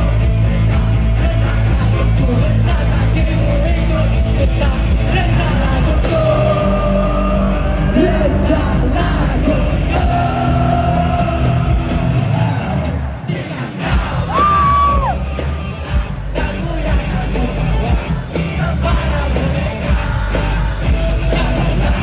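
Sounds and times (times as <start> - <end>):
person singing: 0.0 - 15.2, 15.8 - 22.0
pop-punk band playing live: 0.0 - 22.0.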